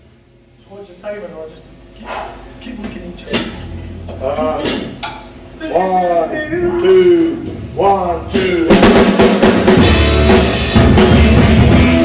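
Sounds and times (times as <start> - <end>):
low bass hum: 0.0 - 12.0.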